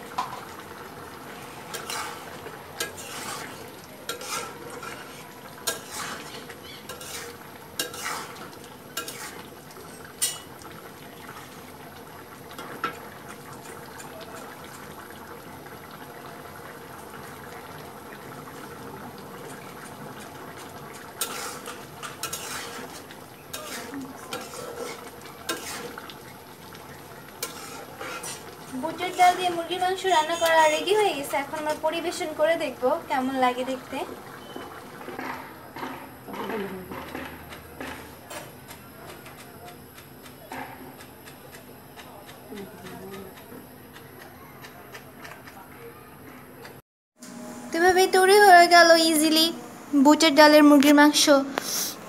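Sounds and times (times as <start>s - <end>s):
pot simmering hiss: 0.0s - 52.0s
metal spatula scraping metal pot: 1.6s - 10.5s, 21.2s - 26.1s, 27.4s - 30.9s.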